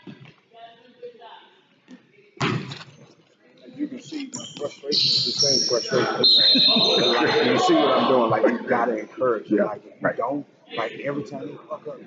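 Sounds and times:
faint voices: 3.5s - 12.0s.

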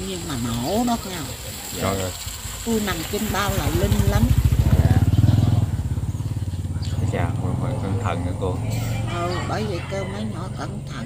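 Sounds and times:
motorbike engine running: 2.6s - 10.6s.

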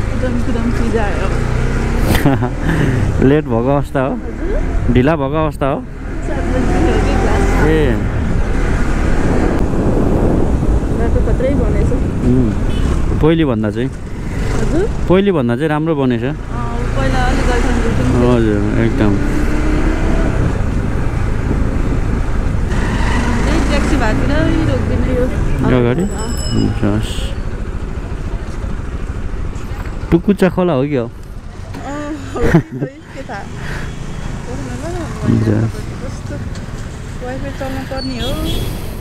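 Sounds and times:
motorcycle engine rumble: 0.0s - 39.0s
passing traffic: 0.0s - 39.0s
person talking: 31.8s - 33.5s.

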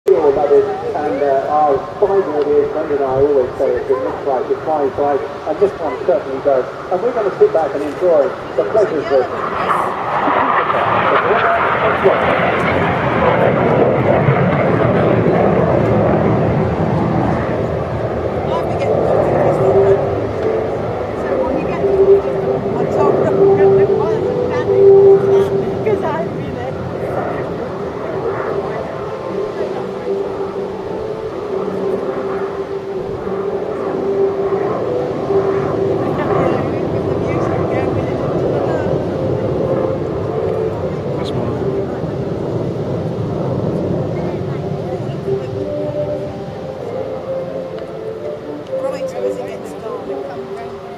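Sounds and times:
distant jet engine rumble: 0.1s - 50.9s.

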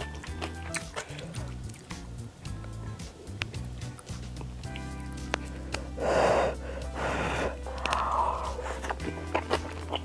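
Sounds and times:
slurping noodles: 5.4s - 10.0s.

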